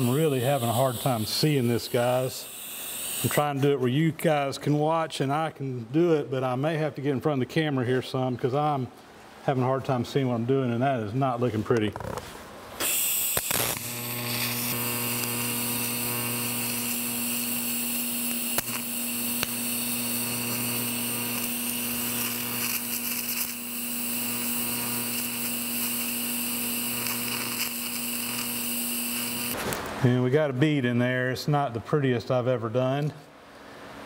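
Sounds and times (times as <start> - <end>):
welding arc buzzing with hiss: 0.0 - 3.7, 12.0 - 29.8.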